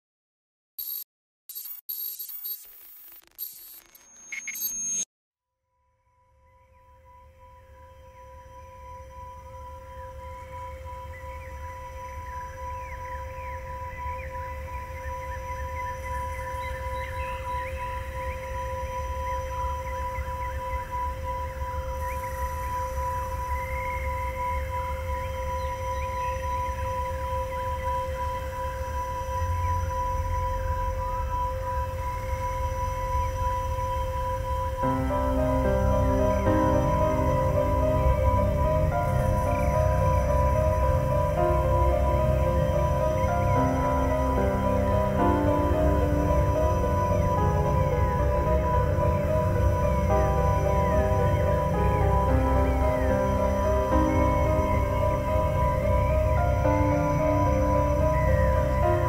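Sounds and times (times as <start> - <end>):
eerie warbling squeals: 16.2 - 59.0
deep rumble: 29.0 - 59.0.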